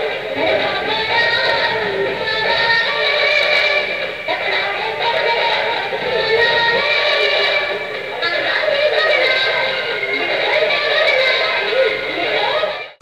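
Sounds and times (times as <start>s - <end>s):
music with high wavering voice: 0.0s - 13.0s.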